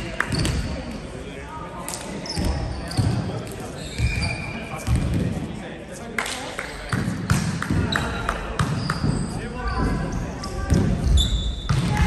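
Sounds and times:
sneakers squeaking on floor: 0.2s - 0.8s, 2.2s - 5.3s, 6.7s - 12.0s
volleyball bouncing on wood floor: 4.8s - 5.3s, 6.9s - 10.0s, 10.6s - 12.0s.

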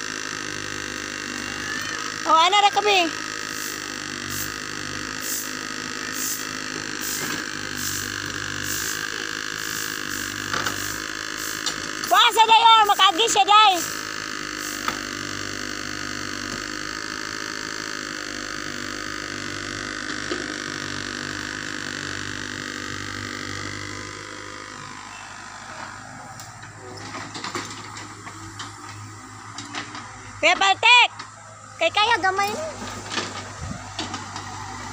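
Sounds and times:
excavator engine and hydraulics hum: 0.0s - 34.9s.

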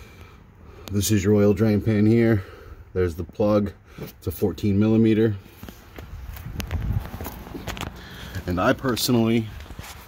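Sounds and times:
footsteps on gritty asphalt: 5.4s - 10.0s
phone handling rustle: 5.6s - 10.0s.

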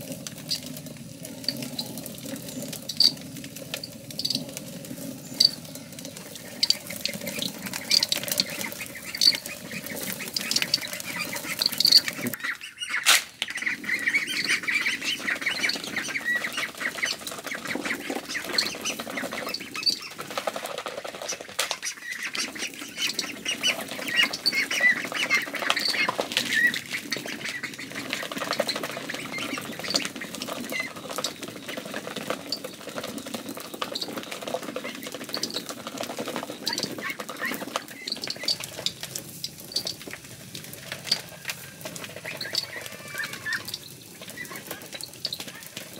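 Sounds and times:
stone mill grinding grain: 0.0s - 12.4s, 14.1s - 45.9s
ducks quacking: 6.2s - 39.0s, 41.8s - 45.9s.

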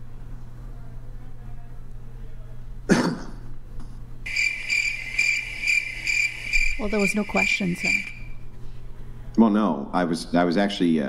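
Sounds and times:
person coughing: 2.9s - 3.4s
crickets chirping: 4.3s - 8.5s.

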